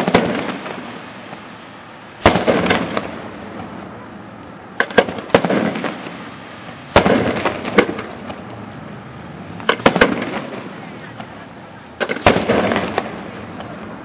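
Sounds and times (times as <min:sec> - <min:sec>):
firework shells bursting: 0:00.0 - 0:01.6, 0:02.2 - 0:03.5, 0:04.7 - 0:08.5, 0:09.6 - 0:13.8.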